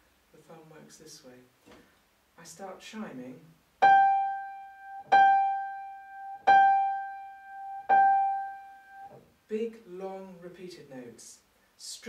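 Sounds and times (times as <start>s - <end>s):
grand piano note ringing: 3.8s - 9.1s.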